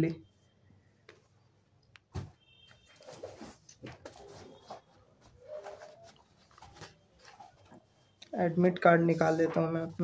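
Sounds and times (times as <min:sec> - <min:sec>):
pigeon cooing: 0:05.4 - 0:06.3.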